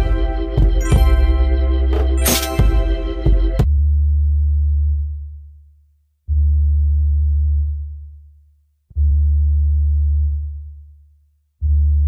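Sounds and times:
deep synth bass notes: 0:00.0 - 0:05.1.

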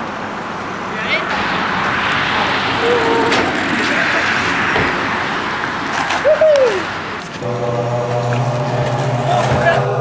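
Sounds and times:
skateboard wheels rolling on asphalt: 0:00.0 - 0:10.0
person whooping: 0:06.2 - 0:06.9.

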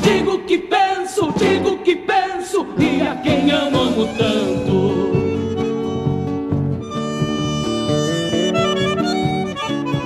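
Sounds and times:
voices singing a folk song: 0:00.0 - 0:05.8
light instrumental backing: 0:02.8 - 0:10.0.

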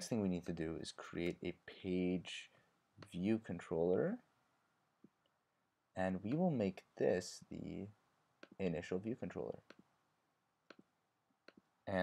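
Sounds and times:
person speaking: 0:00.0 - 0:04.3, 0:05.9 - 0:09.9.

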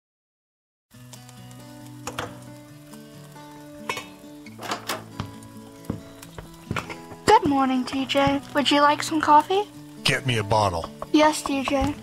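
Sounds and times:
food sizzling in a frying pan: 0:00.9 - 0:12.0
soft background music: 0:00.9 - 0:12.0
utensils and dishes clinking: 0:03.9 - 0:05.1.

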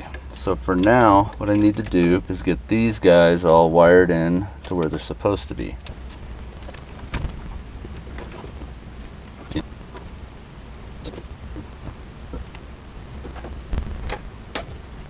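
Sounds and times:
wires clicking and rustling: 0:00.0 - 0:03.8, 0:04.6 - 0:10.2, 0:10.8 - 0:15.0
low steady rumble: 0:00.0 - 0:15.0.

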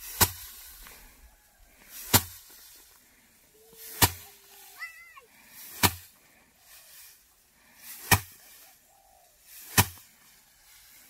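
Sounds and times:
rice stalks striking wooden frame: 0:00.0 - 0:01.0, 0:01.8 - 0:02.9, 0:03.8 - 0:04.4, 0:05.6 - 0:06.2, 0:07.8 - 0:08.6, 0:09.5 - 0:10.3
swish of swinging stalks: 0:00.0 - 0:03.0, 0:03.6 - 0:11.0.

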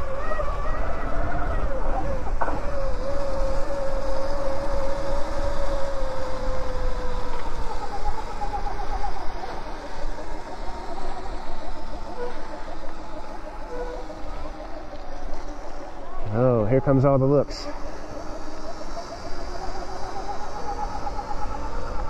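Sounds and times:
wind noise on microphone: 0:00.0 - 0:16.9
electric dirt bike motors whining: 0:00.0 - 0:22.0.

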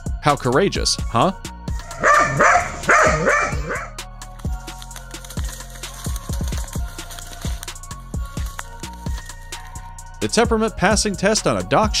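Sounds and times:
background music with beat: 0:00.0 - 0:12.0
dog barking: 0:01.8 - 0:04.0.

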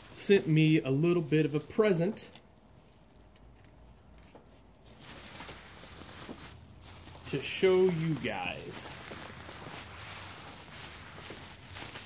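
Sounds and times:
bubble wrap rustling and crinkling: 0:00.0 - 0:12.0.

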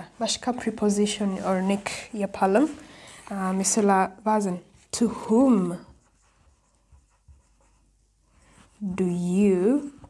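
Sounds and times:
person speaking: 0:00.0 - 0:06.3, 0:08.7 - 0:10.0
marker writing on whiteboard: 0:05.1 - 0:10.0.

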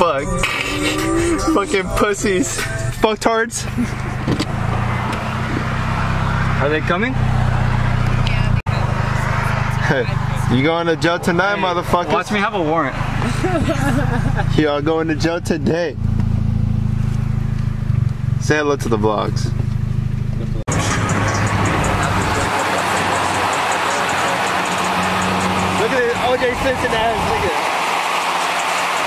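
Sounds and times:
car engine humming: 0:00.0 - 0:29.0
road noise hiss: 0:19.8 - 0:29.0.

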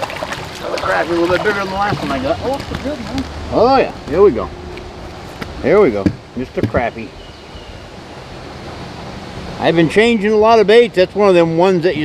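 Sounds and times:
rushing water: 0:00.0 - 0:12.0
wind: 0:00.0 - 0:12.0.

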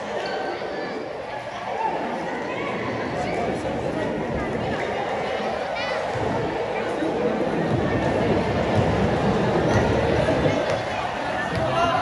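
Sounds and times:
crowd chattering in gymnasium: 0:00.0 - 0:12.0.

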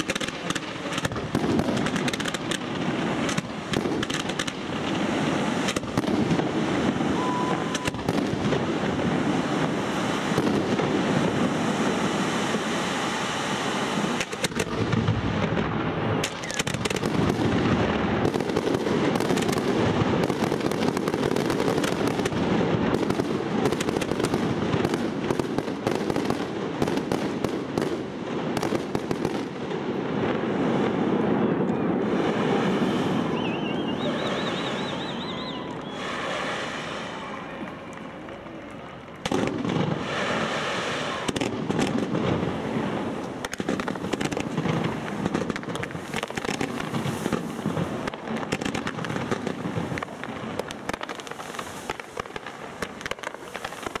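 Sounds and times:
fireworks launching and bursting: 0:00.0 - 0:54.0.

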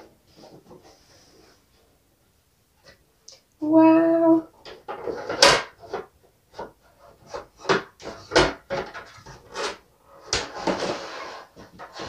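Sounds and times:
plastic and cardboard rustling: 0:00.0 - 0:01.9, 0:04.6 - 0:12.0.

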